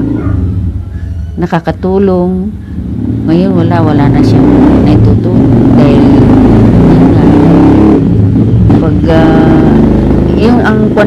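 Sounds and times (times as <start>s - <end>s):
engine running loudly: 0.0s - 1.1s, 1.8s - 11.0s.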